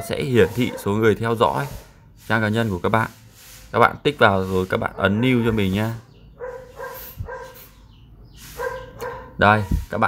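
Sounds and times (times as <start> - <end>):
dog barking faintly: 0.2 - 1.9, 4.7 - 7.8, 8.5 - 10.0.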